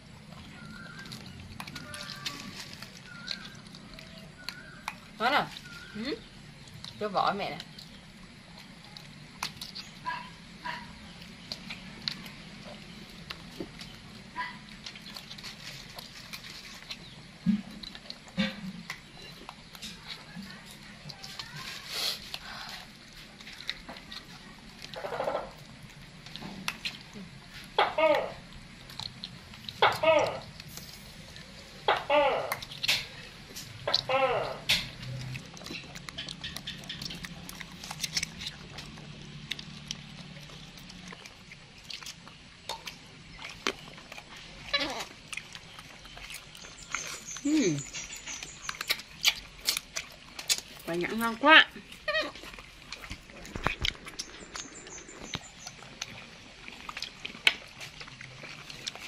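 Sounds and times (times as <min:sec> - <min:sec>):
wet chewing: 0:00.0 - 0:59.0
fruit shells cracking: 0:00.4 - 0:59.0
young macaque squeaking: 0:31.9 - 0:32.8, 0:33.8 - 0:34.7, 0:44.6 - 0:45.2, 0:52.0 - 0:52.5.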